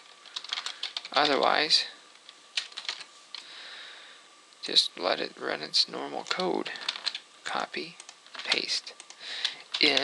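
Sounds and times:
computer keyboard keystrokes: 0.3s - 1.4s, 2.6s - 3.1s, 6.2s - 7.2s, 8.0s - 10.0s.

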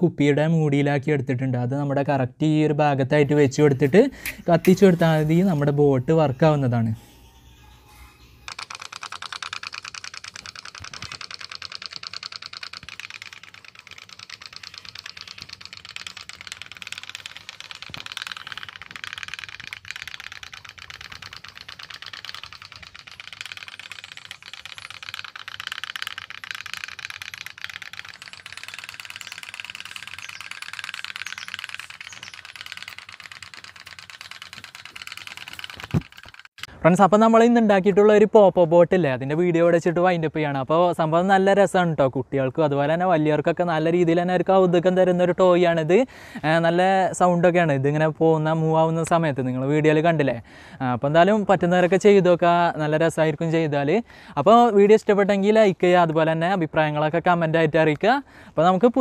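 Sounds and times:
toy steam boat rattling putter: 8.3s - 36.7s.

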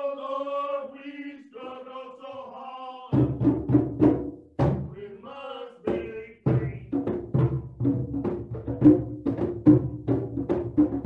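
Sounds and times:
drums in quick rhythm: 3.1s - 5.1s, 5.9s - 11.0s.

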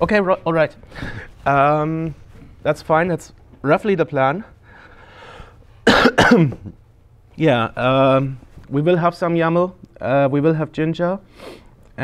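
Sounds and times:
man coughing: 5.8s - 6.8s.

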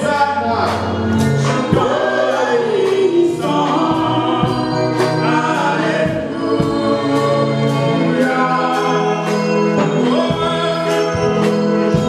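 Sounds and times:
light percussive beat: 0.0s - 7.8s
instrumental accompaniment: 0.0s - 12.0s
sustained bass notes: 0.0s - 12.0s
woman singing gospel song: 1.2s - 12.0s.

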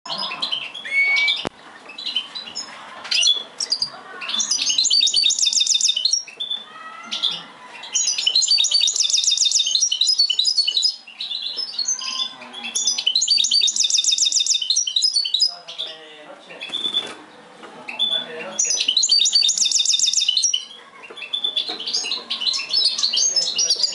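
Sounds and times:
bird twittering song with trills: 0.1s - 16.0s, 16.6s - 23.9s.

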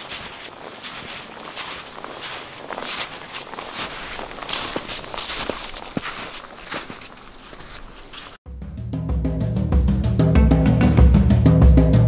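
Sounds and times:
boots crunching through snow: 0.0s - 8.4s.

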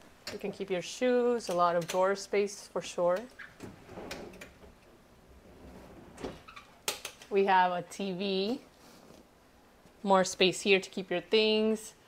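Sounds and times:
faint shuffling: 8.2s - 10.1s.

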